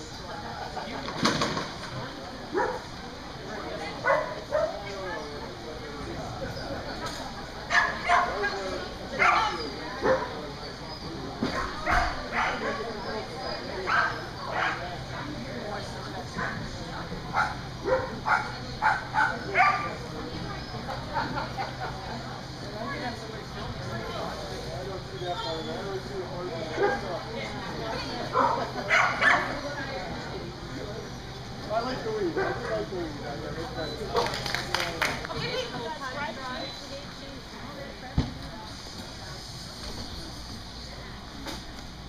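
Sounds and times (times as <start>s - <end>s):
dog barking: 2.5s - 2.9s, 4.0s - 4.8s, 7.7s - 8.4s, 9.2s - 10.4s, 11.6s - 12.8s, 13.9s - 14.8s, 17.3s - 19.9s, 28.3s - 29.6s.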